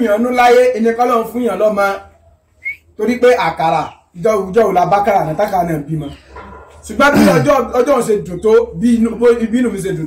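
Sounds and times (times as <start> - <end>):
high whistle-like chirp: 2.6 - 2.9.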